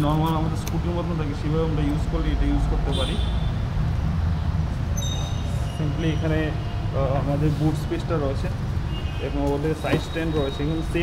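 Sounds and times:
short high metallic tones: 0:04.9 - 0:06.8.

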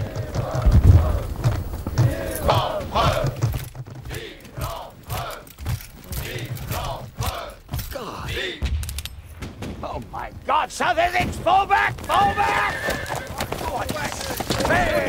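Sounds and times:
low regular thumps: 0:00.0 - 0:12.2
soldiers shouting together: 0:02.0 - 0:03.4, 0:04.1 - 0:05.5, 0:06.1 - 0:08.6, 0:11.6 - 0:15.0.

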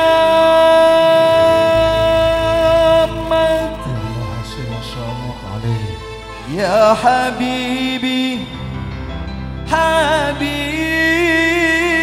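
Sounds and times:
man singing a long note: 0:00.0 - 0:08.8, 0:09.7 - 0:12.0
quiet low band accompaniment: 0:00.0 - 0:12.0.

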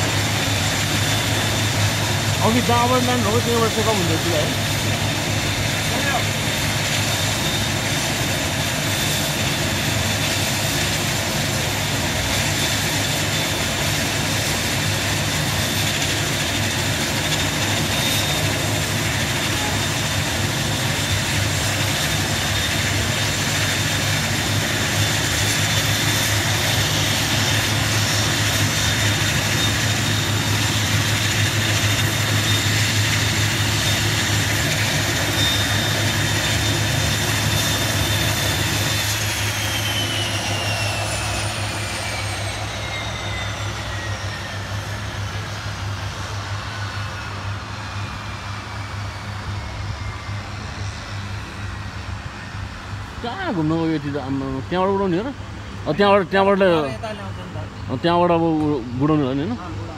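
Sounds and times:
turboprop engines whining: 0:00.0 - 0:59.9.

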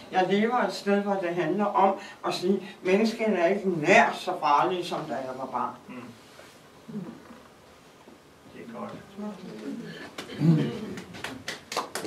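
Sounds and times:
person murmuring: 0:06.9 - 0:07.4, 0:09.6 - 0:11.0.

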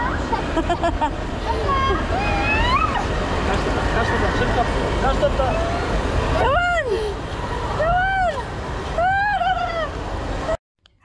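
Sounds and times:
water rushing: 0:00.0 - 0:10.6
child crying out: 0:01.9 - 0:03.1.

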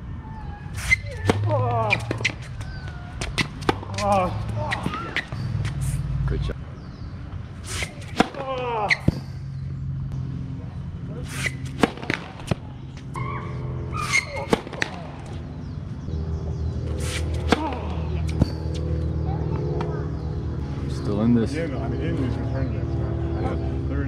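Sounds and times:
rackets hitting tennis balls: 0:00.7 - 0:06.1, 0:07.3 - 0:10.3, 0:10.9 - 0:15.8, 0:16.8 - 0:19.0.

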